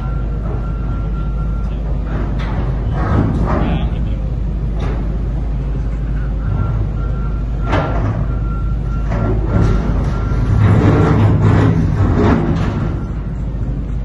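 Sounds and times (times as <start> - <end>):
diesel engine rumble: 0.0 - 14.0.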